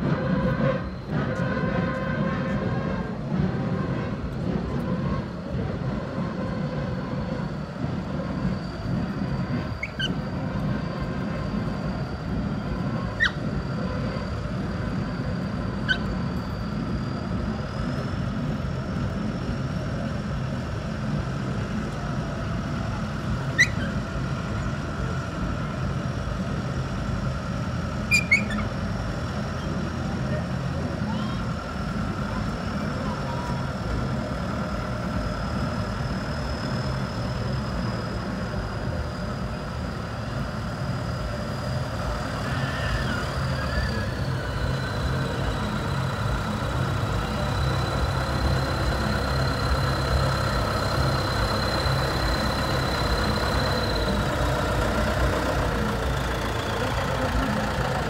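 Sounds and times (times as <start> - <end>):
thin high steady whine: 0.0 - 58.0
tractor diesel engine running: 0.0 - 58.0.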